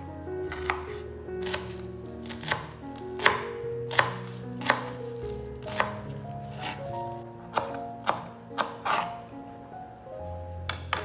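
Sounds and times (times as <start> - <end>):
soft background music: 0.0 - 11.0
knife chopping on cutting board: 0.5 - 6.9, 7.5 - 9.2.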